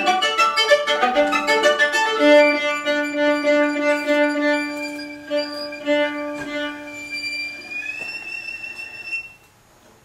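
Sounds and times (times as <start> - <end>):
bowed viola tone: 0.0 - 9.5.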